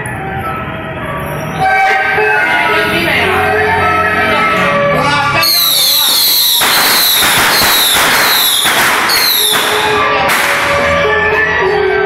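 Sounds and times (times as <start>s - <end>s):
high whistles falling in pitch: 5.4s - 10.0s
firecrackers crackling: 5.4s - 11.0s.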